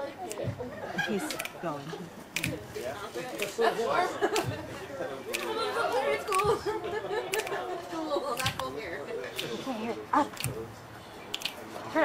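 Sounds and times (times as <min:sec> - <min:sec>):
people chattering and laughing: 0:00.0 - 0:12.0
sharp click: 0:11.3 - 0:11.6.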